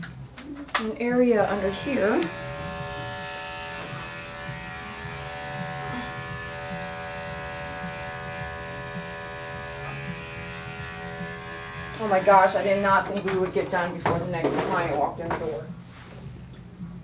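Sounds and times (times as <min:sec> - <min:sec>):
electric clippers buzzing: 0:01.3 - 0:13.2.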